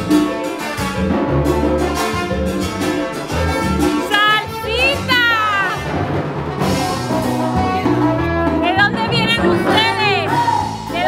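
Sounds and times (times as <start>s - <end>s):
hand drums: 0.0s - 11.0s
live band playing upbeat music: 0.0s - 11.0s
steady bass: 0.0s - 11.0s
trumpet and trombone lines: 0.0s - 11.0s.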